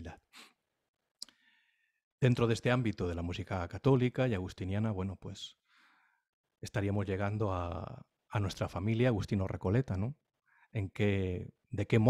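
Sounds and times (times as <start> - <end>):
breath: 0.3 - 0.6, 1.3 - 2.0, 5.6 - 6.3, 10.4 - 10.8.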